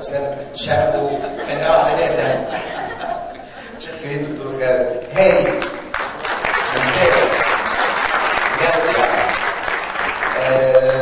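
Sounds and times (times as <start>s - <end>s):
person speaking: 0.0s - 5.9s
audience applauding: 5.2s - 11.0s.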